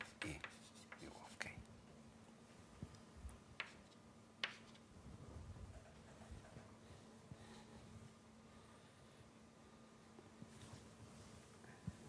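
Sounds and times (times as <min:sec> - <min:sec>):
chalk on a blackboard: 0:00.0 - 0:01.4, 0:03.6 - 0:04.8
faint steady hum: 0:00.0 - 0:12.0.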